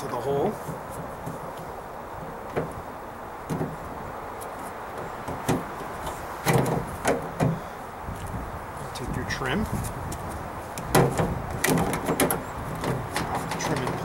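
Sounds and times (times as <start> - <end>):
handle knocking against sheet metal: 6.4 - 7.6, 10.9 - 14.0.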